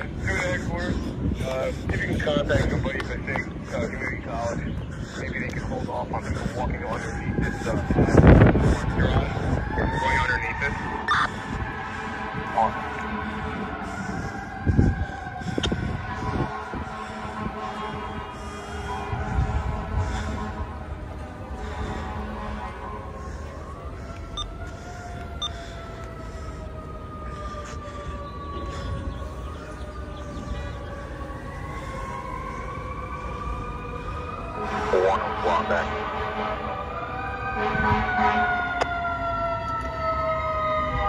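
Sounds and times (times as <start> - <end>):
sirens wailing: 0.0 - 41.0.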